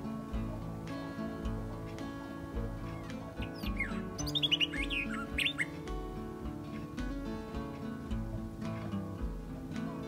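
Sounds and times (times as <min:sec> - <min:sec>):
soft acoustic guitar music: 0:00.0 - 0:10.0
bird chirping: 0:02.6 - 0:06.0.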